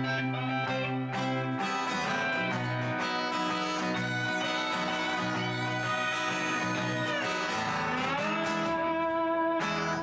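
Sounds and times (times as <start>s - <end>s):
harmonica playing: 0.0s - 10.0s
strummed acoustic guitar: 0.0s - 10.0s.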